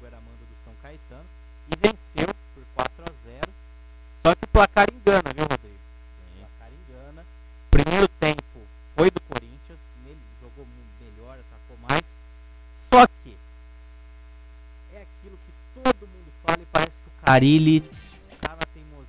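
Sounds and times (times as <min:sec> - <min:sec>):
mains hum: 0:00.0 - 0:19.0.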